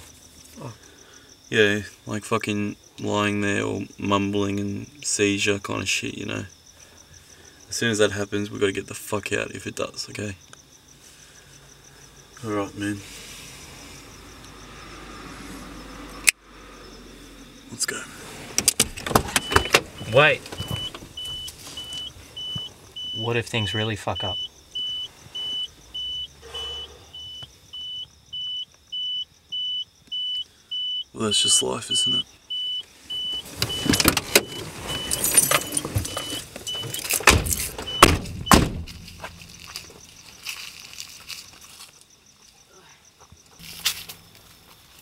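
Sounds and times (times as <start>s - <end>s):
car doors slamming: 18.5s - 21.6s, 33.4s - 40.0s
clicks of car door handles: 18.6s - 21.0s, 35.2s - 39.0s
car warning chime beeps: 19.3s - 40.1s
clothing rustling: 33.3s - 37.8s.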